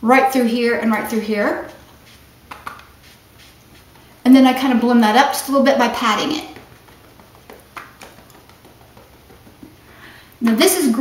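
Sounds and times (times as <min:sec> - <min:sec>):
fingertips tapping skin: 0:02.5 - 0:04.1, 0:06.4 - 0:09.9.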